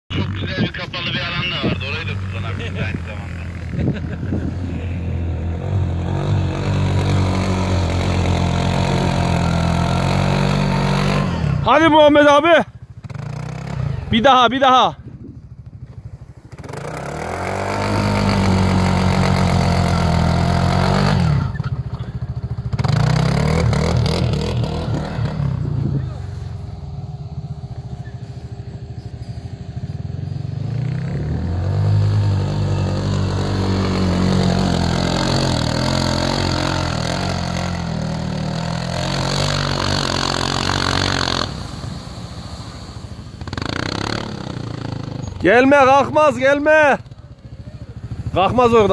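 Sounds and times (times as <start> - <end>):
utility vehicle engine revving: 0.1 - 14.9, 15.6 - 48.9.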